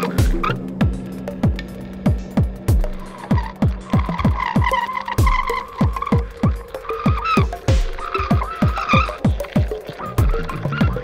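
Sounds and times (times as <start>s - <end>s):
squealing gliding high tones: 2.8s - 11.0s.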